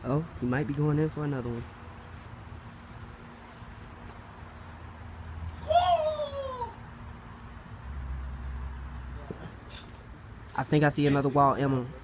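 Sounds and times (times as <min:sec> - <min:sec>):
short high-pitched cry: 0:05.6 - 0:06.8.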